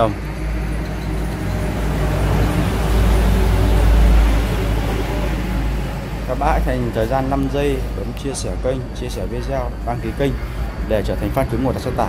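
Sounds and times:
vehicle engine rumble and road noise: 0.0 - 12.0.

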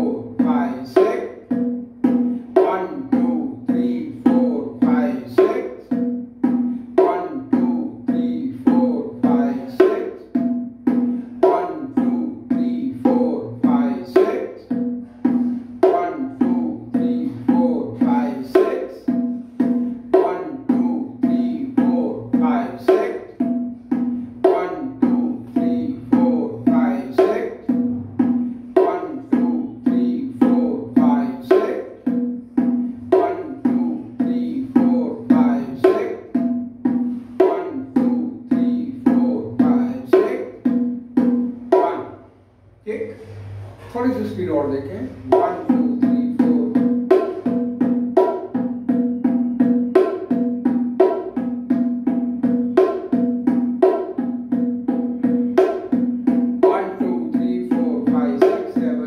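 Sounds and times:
bongos played with hands: 0.0 - 59.0.

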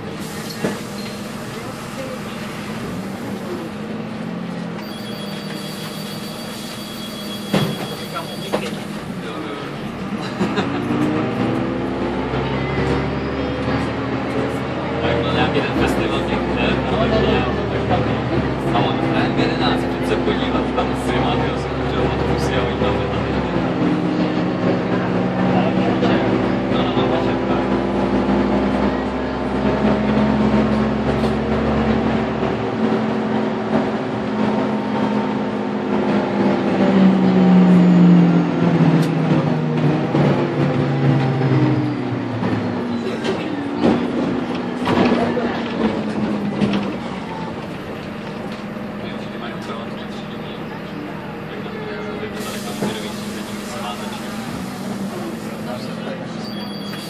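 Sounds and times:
bus diesel engine: 0.0 - 57.0
bus body knocks and rattles: 42.5 - 48.7.

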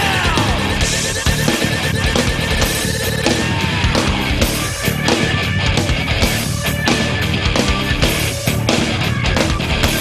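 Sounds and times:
distorted electric guitar: 0.0 - 10.0
drums: 0.0 - 10.0.

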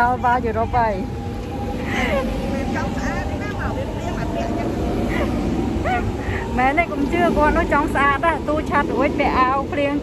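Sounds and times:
electric train humming: 0.0 - 10.0
faint voices: 0.0 - 10.0.

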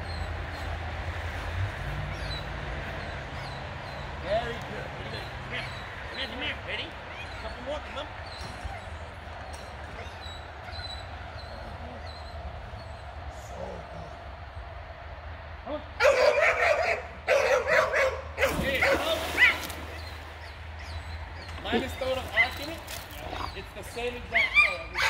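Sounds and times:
dog barking and yipping: 16.0 - 19.7.

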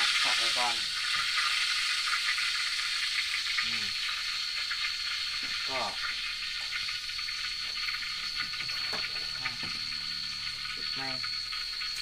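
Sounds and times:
pork sizzling in hot oil: 0.0 - 12.0.

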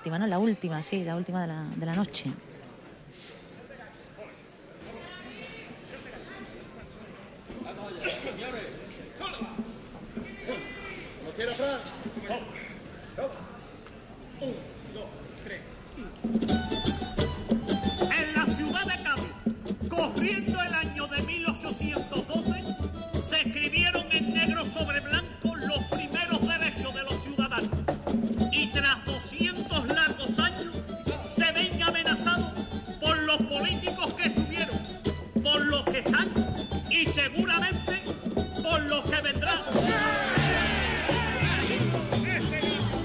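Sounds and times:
chorus singing: 39.6 - 43.0
strummed guitars and bass: 39.7 - 43.0.

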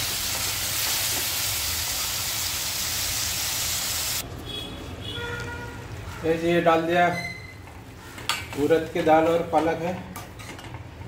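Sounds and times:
food sizzling in pan: 0.0 - 4.2.

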